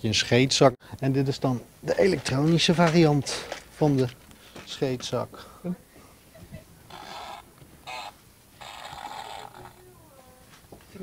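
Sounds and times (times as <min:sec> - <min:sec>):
electronic fart noises: 0:06.9 - 0:09.9.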